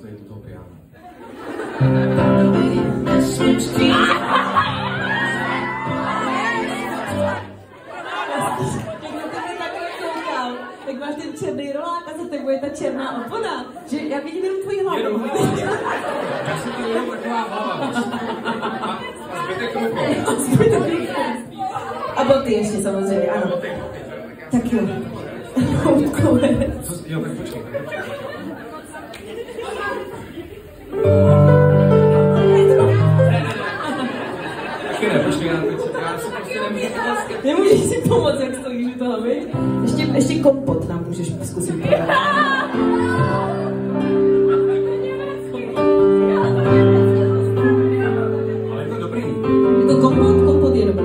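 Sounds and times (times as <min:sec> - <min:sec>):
several voices talking: 0:00.0 - 0:51.0
sustained keyboard chord: 0:31.0 - 0:33.8.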